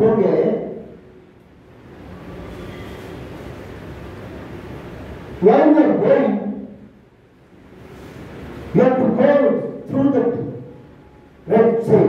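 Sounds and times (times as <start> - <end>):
man speaking into a microphone: 0.0 - 1.0, 5.4 - 7.0, 8.7 - 10.8, 11.4 - 12.0.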